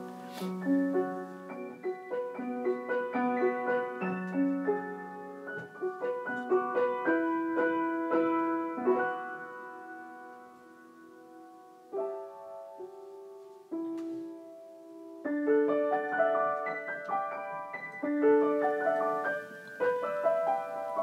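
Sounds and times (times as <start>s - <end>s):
solo piano melody: 0.0s - 21.0s.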